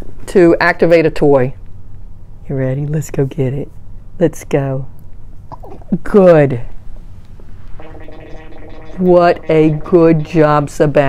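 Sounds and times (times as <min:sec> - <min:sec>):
electronic chord tone: 0:07.8 - 0:10.8.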